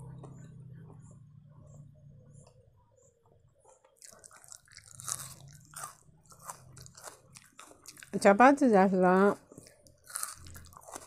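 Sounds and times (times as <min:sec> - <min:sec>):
onion ring crunching: 0:03.8 - 0:08.2, 0:09.5 - 0:11.0.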